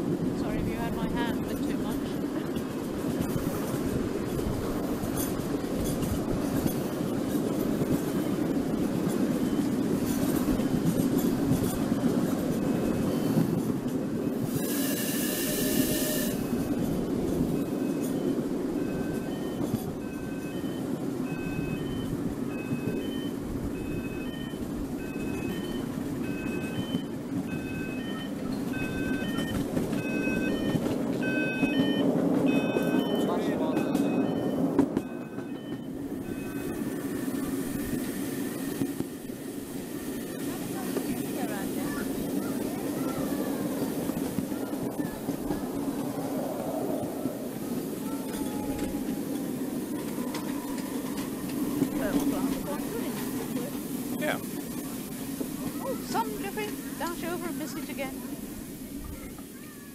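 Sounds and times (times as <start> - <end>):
miniature steam train rumbling: 0.0 - 59.9
high steam whistle: 14.4 - 16.7.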